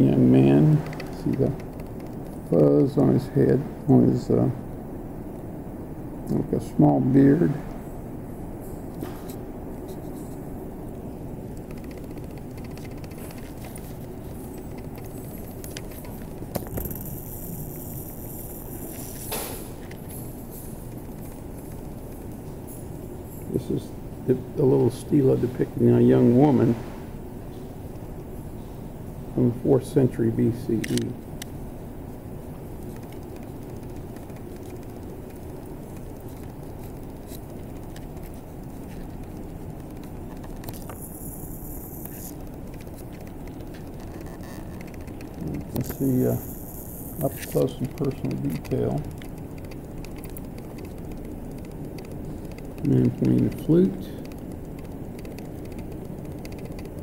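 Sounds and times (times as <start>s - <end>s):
low room noise rumble: 0.0s - 57.0s
sharp click: 30.8s - 31.5s
faint clicks: 42.0s - 57.0s.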